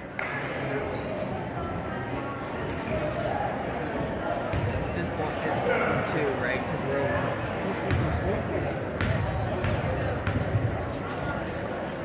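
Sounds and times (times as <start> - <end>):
echoing crowd chatter: 0.0 - 12.0
basketball bouncing on wooden floor: 9.0 - 10.8.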